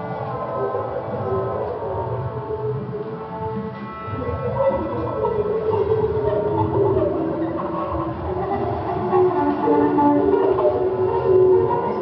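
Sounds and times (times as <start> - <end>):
bowed fiddle long notes: 0.0 - 12.0.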